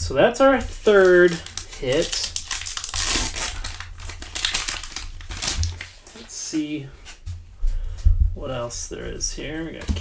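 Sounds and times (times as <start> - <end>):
foil wrapper tearing and crinkling: 0.9 - 6.3.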